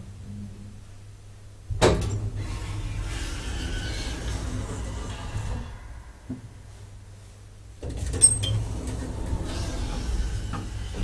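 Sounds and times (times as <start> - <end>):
mechanical rumbling and rattling: 1.7 - 7.0, 7.7 - 11.0
elevator low hum: 2.1 - 11.0.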